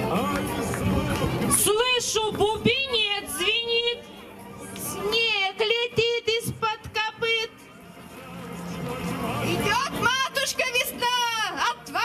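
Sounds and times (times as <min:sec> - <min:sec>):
high voice singing through loudspeaker: 0:00.0 - 0:04.1, 0:04.9 - 0:12.0
murmur of sound: 0:00.0 - 0:12.0.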